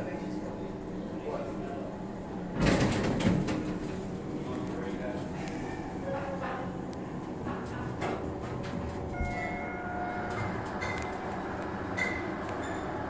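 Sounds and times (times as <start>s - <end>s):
elevator rumble: 0.0s - 13.0s
high whine: 9.1s - 12.4s.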